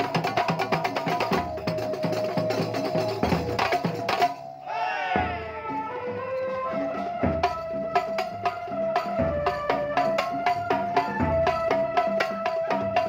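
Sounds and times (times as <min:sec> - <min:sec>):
fast beat on frame drums: 0:00.0 - 0:04.4, 0:07.2 - 0:13.0.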